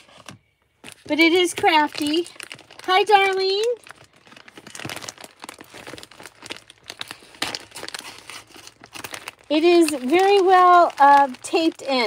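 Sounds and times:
plastic mailer bag crinkling: 0.0 - 12.0.

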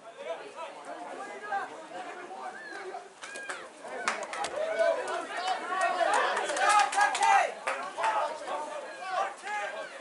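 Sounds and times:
voices shouting and calling: 0.0 - 10.0.

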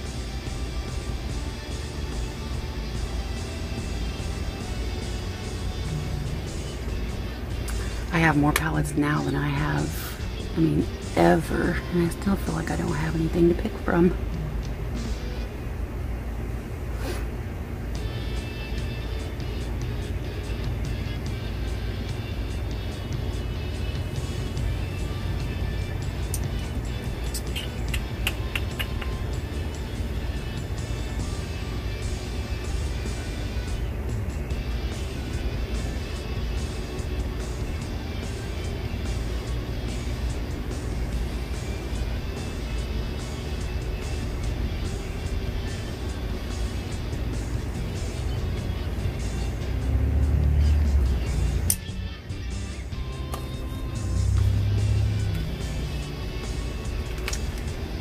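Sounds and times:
music with low bass: 0.0 - 58.0.

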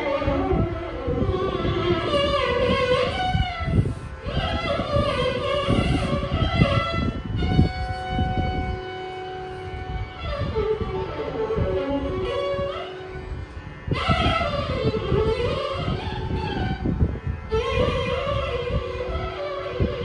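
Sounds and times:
violin playing ornamented phrases: 0.0 - 20.0.

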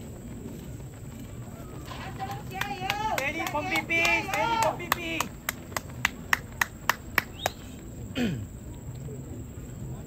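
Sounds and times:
running footsteps on a track: 0.0 - 10.0.

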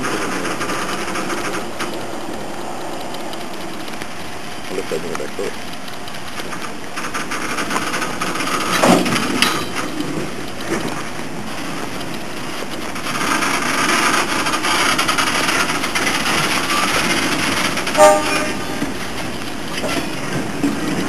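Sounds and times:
train wheels rumbling on rails: 0.0 - 21.0
brief loud tone: 18.0 - 18.8.

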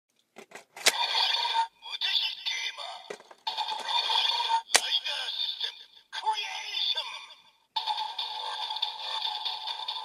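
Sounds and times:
toy electronic voice call: 0.9 - 2.9, 3.6 - 7.4.

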